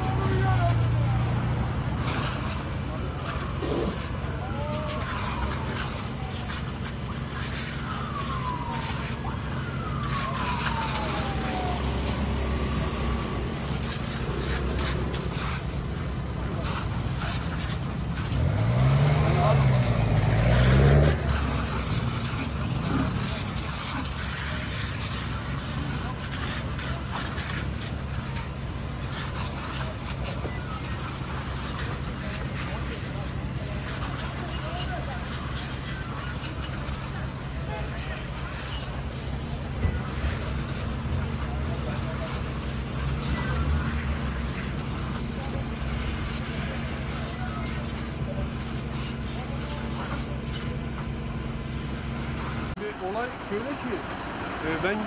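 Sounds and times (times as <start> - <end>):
fire engine engine humming: 0.0 - 55.0
people's voices: 0.0 - 55.0
falling siren-like tones: 7.0 - 15.6.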